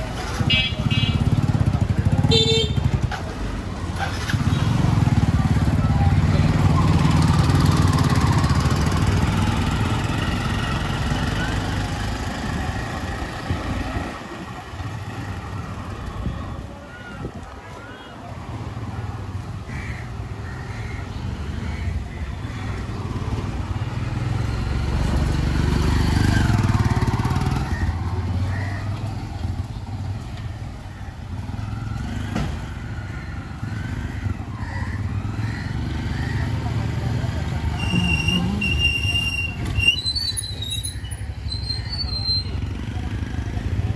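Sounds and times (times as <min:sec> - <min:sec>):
traffic engine rumble: 0:00.0 - 0:43.9
people talking: 0:36.5 - 0:39.4.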